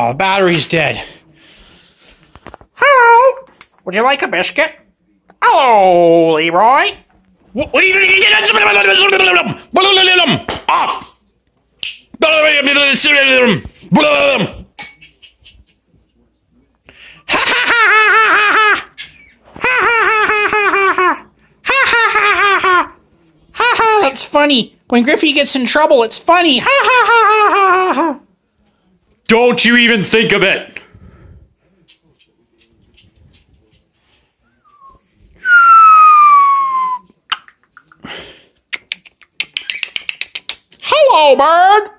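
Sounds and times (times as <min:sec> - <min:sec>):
long descending whistle: 0:34.6 - 0:37.1.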